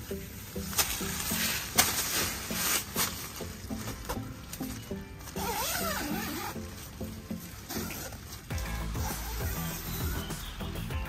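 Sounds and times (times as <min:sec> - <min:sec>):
background music: 0:00.0 - 0:11.0
tent zipper being pulled: 0:05.4 - 0:06.7, 0:07.7 - 0:08.2.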